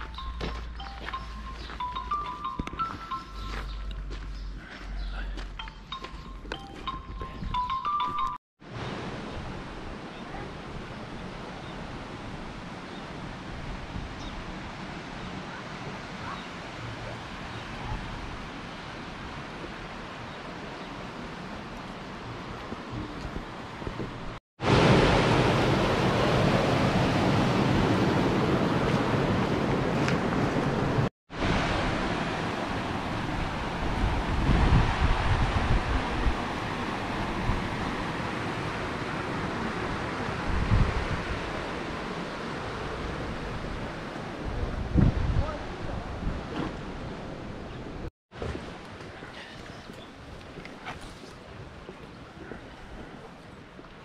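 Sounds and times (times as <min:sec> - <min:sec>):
wind buffeting microphone: 0:32.6 - 0:50.6.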